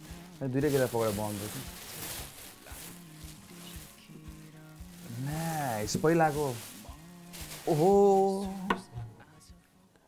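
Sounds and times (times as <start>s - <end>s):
plastic wrapping crinkling: 0.0s - 8.8s
faint background music: 0.0s - 10.0s.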